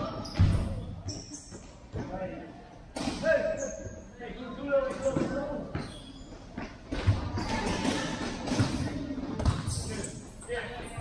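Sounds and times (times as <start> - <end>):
ball kicked and bouncing on court: 0.2 - 2.3, 4.9 - 10.2.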